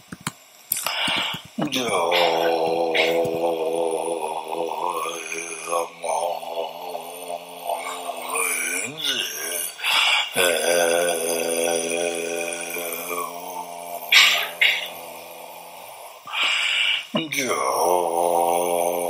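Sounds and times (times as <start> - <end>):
breathy bursts: 0.8 - 19.0
man chanting prayers: 0.8 - 19.0.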